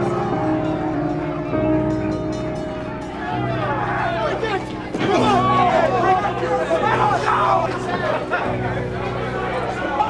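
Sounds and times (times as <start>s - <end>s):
voices talking and shouting: 0.0s - 10.0s.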